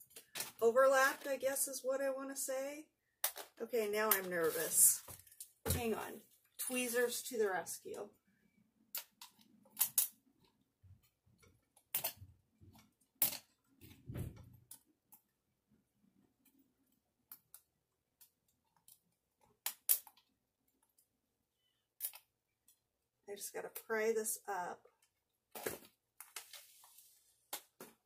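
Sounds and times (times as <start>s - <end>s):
soft handling rustle: 4.2s - 7.0s, 26.2s - 27.5s.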